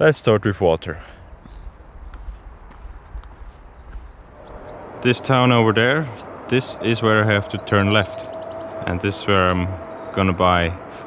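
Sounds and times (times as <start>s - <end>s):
steady low rumble: 1.2s - 11.0s
footsteps on twigs and branches: 1.4s - 4.6s.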